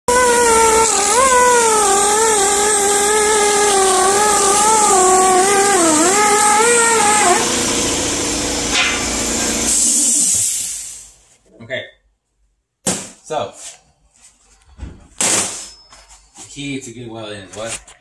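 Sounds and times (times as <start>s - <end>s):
hiss: 0.1s - 7.9s, 8.7s - 11.2s
die grinder whining on metal: 0.1s - 9.7s.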